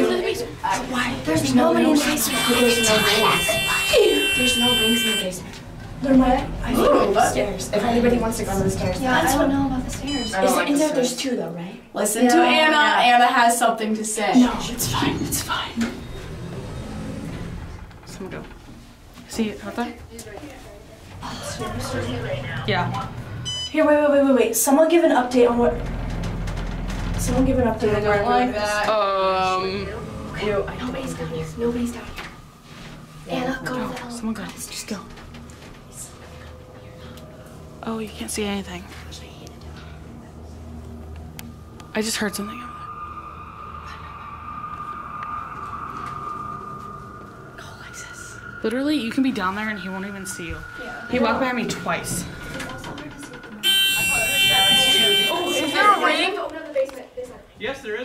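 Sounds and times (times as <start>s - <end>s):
elevator hum and rumble: 0.0s - 56.5s
steady high-pitched tone: 28.2s - 56.6s.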